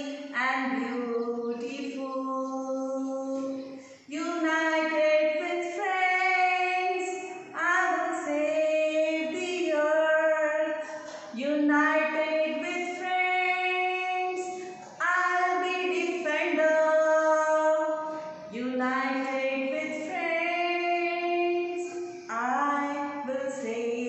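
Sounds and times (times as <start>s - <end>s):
woman singing unaccompanied: 0.0s - 24.0s.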